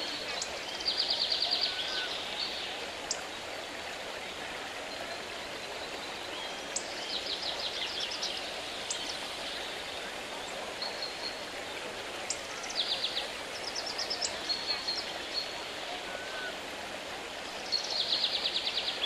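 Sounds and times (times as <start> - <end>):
running water rushing: 0.0 - 19.0.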